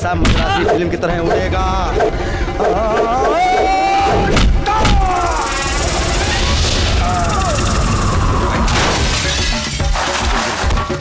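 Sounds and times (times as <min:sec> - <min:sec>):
dramatic film score: 0:00.0 - 0:11.0
loud crashing and shattering: 0:04.2 - 0:11.0.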